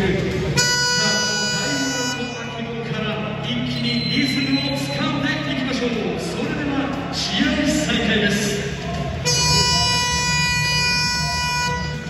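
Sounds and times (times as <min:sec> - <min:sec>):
low arena rumble: 0:00.0 - 0:12.0
game horn buzzing: 0:00.5 - 0:02.6, 0:09.2 - 0:12.0.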